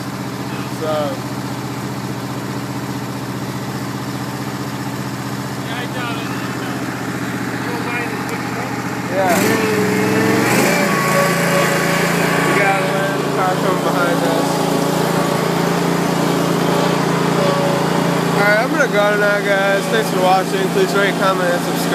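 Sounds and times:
mower engine running: 0.0 - 21.9.

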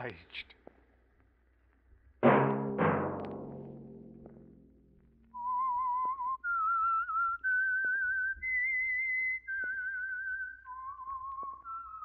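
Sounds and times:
person whistling a tune: 5.3 - 12.0.

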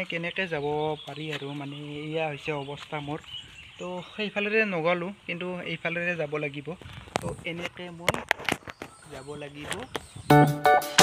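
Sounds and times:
man talking: 0.0 - 8.3, 9.0 - 10.0.

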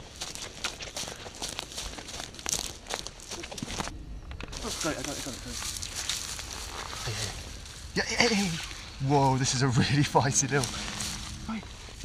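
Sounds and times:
footsteps on dry leaves: 0.0 - 3.9, 4.5 - 12.0.

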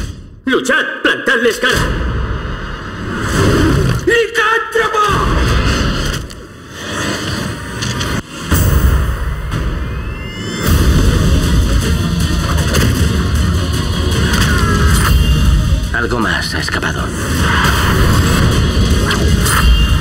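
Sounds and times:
trailer music with deep booms: 1.5 - 4.1, 5.0 - 20.0
rising whine: 8.0 - 12.5.

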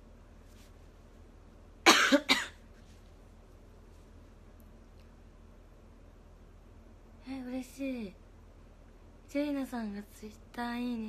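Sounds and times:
woman coughing: 1.8 - 2.6.

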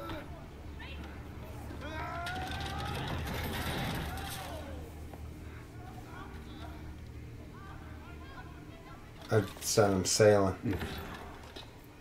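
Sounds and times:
clattering: 2.2 - 4.6.

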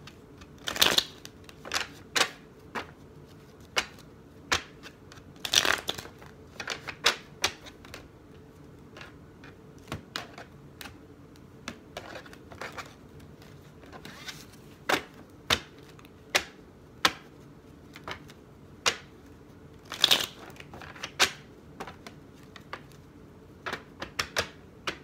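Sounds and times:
cards being shuffled: 0.0 - 25.0.

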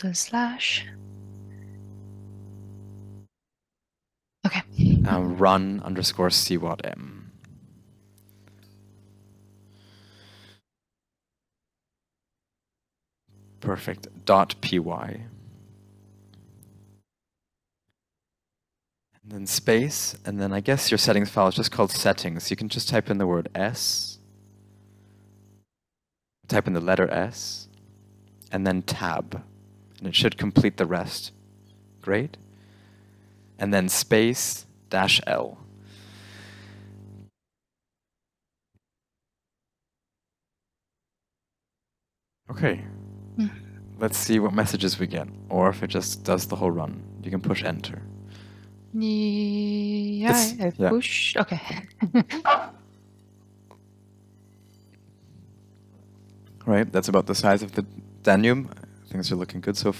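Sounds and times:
faint electrical hum: 0.0 - 3.3, 4.5 - 10.6, 13.3 - 17.0, 19.2 - 25.7, 26.5 - 37.3, 42.5 - 59.9
person laughing: 4.5 - 5.5, 51.6 - 52.7.

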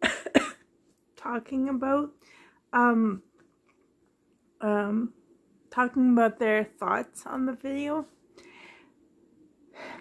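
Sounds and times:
woman breathing: 2.2 - 2.7, 8.2 - 9.1, 9.7 - 10.0.

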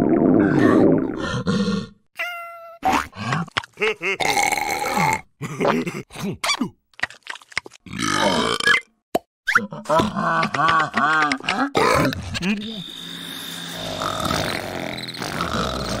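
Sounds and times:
rhythmic cartoon laughter: 2.9 - 4.2, 9.6 - 12.8
cartoon characters grunting: 9.6 - 12.8
comic sound-effect clicks: 10.3 - 12.8.

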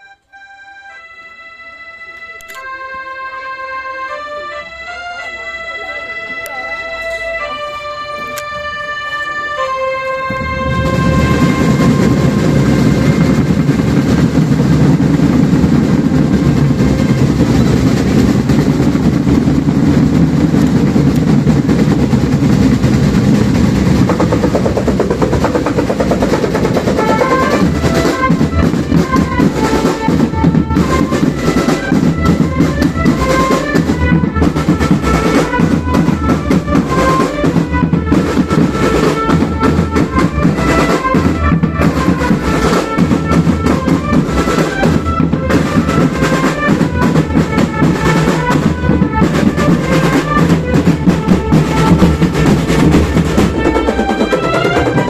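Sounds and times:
brass horns playing melody: 0.0 - 55.0
marching drums: 2.6 - 55.0.

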